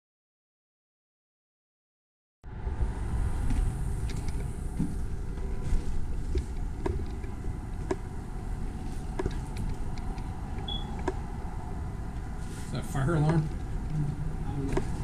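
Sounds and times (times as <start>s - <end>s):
low rumble: 2.4s - 15.0s
short high electronic beep: 10.7s - 10.9s.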